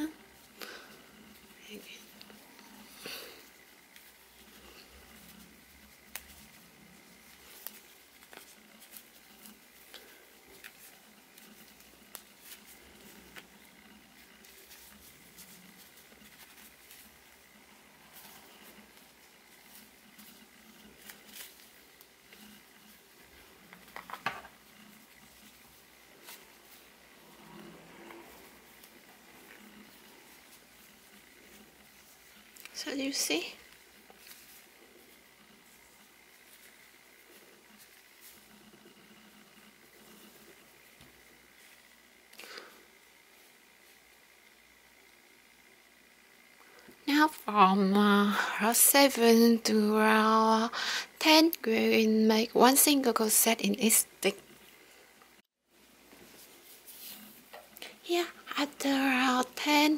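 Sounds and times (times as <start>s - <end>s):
soft rustles of yarn: 0.0s - 59.9s.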